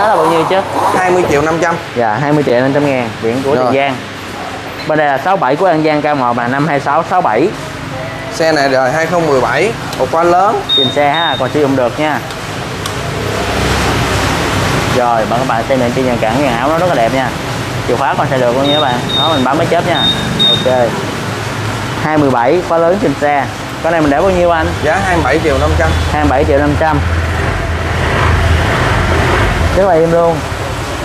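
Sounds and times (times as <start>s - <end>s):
rushing noise: 0.0s - 2.3s, 23.8s - 31.0s
loud steady air rushing: 0.0s - 3.2s, 9.0s - 31.0s.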